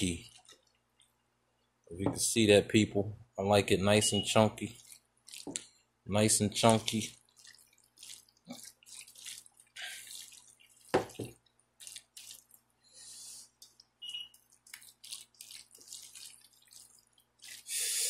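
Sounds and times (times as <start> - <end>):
spatula squelching in salad: 4.7 - 5.7, 6.6 - 11.2, 11.8 - 18.0.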